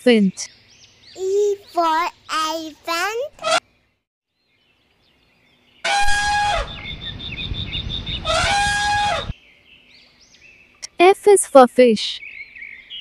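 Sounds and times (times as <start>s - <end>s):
elephant trumpeting: 5.9s - 6.9s, 8.2s - 9.3s
low noisy rumble: 5.9s - 9.3s.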